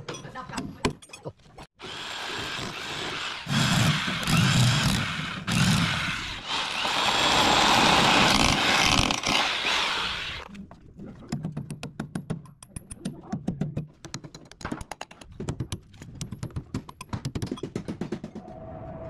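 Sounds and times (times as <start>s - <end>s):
rotary hammer drill boring concrete: 1.8s - 10.5s.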